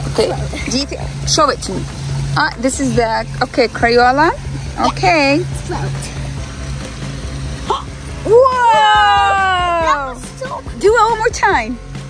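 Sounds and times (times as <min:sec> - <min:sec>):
soft background music: 0:00.0 - 0:12.0
steady low hum: 0:00.0 - 0:12.0.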